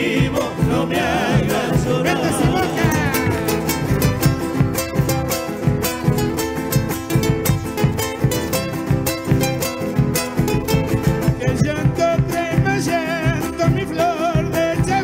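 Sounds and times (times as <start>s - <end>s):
person singing: 0.0s - 4.4s, 11.2s - 15.0s
acoustic guitars strumming: 0.0s - 15.0s.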